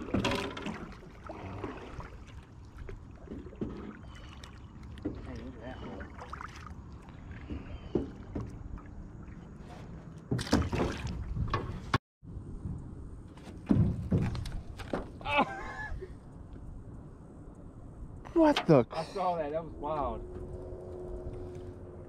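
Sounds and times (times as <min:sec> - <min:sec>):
water around a boat: 0:00.0 - 0:22.0.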